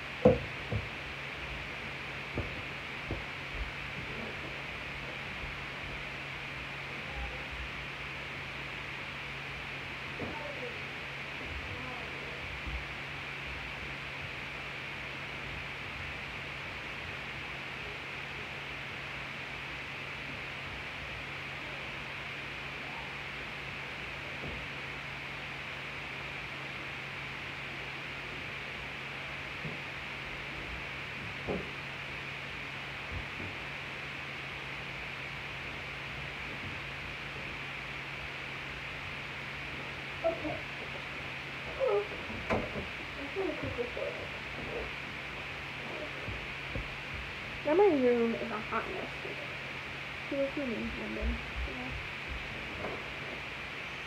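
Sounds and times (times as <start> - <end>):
low even hum: 0.0 - 54.0
room hiss: 0.0 - 54.0.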